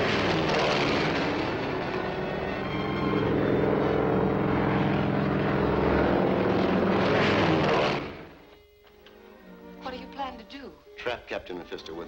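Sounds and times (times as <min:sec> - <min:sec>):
propeller aeroplane engine droning: 0:00.0 - 0:08.6.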